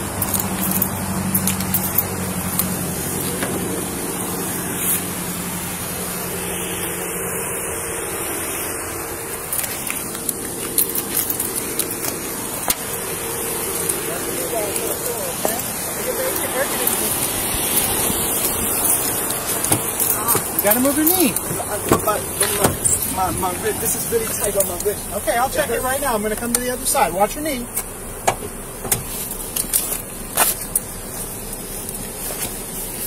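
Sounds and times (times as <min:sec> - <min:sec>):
steady rushing noise: 0:00.0 - 0:33.0.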